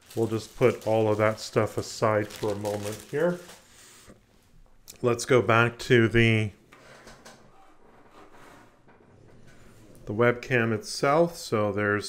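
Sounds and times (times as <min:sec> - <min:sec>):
handling plastic packaging: 0:00.0 - 0:03.8.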